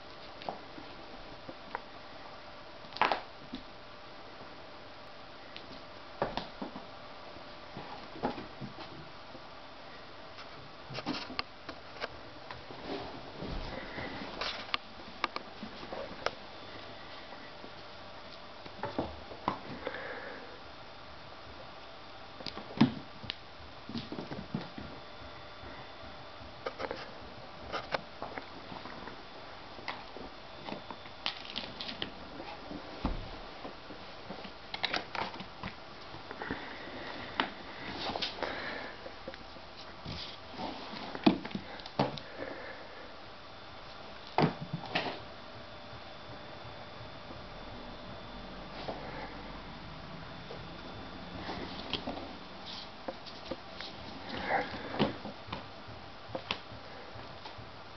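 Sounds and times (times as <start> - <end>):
soft rustling and scuffing: 12.0 - 14.7, 39.6 - 41.3
kitten scuffling: 50.5 - 55.7.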